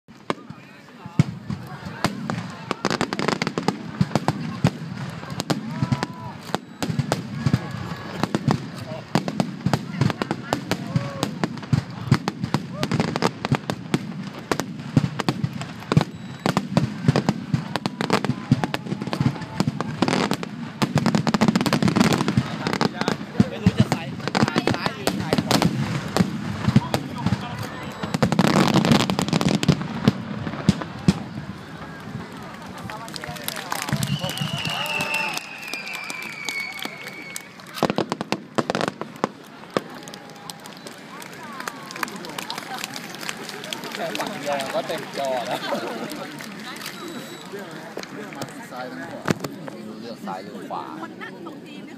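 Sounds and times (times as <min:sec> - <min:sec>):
fireworks bangs and crackles: 0:00.1 - 0:51.2
crowd voices: 0:00.1 - 0:51.9.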